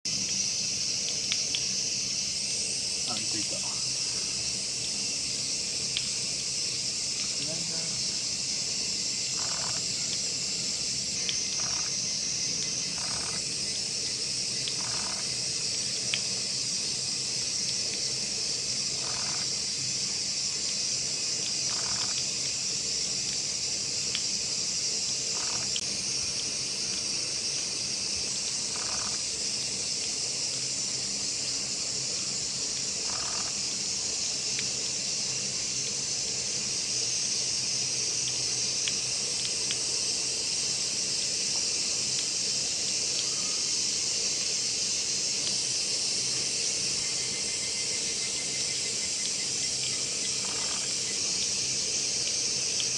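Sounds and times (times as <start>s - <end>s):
high-pitched insect chorus: 0.0s - 52.9s.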